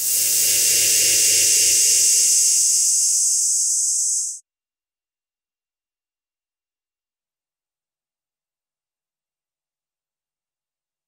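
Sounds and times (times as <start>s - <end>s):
high-pitched hiss: 0.0s - 4.4s.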